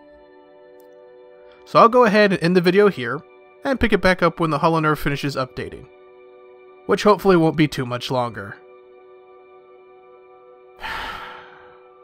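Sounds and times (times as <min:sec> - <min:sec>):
soft background music: 0:00.0 - 0:12.0
man sighing: 0:10.8 - 0:11.9.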